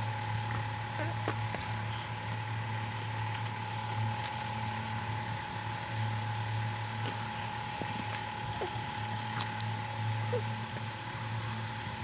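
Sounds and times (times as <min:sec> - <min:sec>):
low mechanical hum: 0:00.0 - 0:12.0
thin constant tone: 0:00.0 - 0:12.0.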